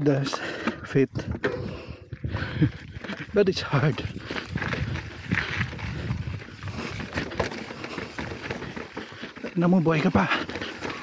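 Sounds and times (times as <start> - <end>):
bike tyre and wind rumble: 0.0 - 11.0
bike knocks and rattles over rocks: 2.9 - 11.0.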